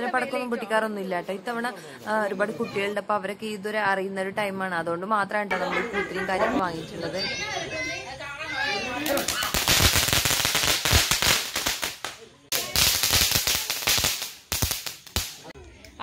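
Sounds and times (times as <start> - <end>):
fireworks crackling: 8.7 - 15.6.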